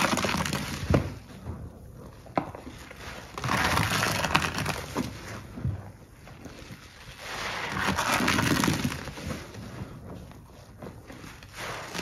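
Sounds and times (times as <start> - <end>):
foam crackling: 6.7 - 12.0.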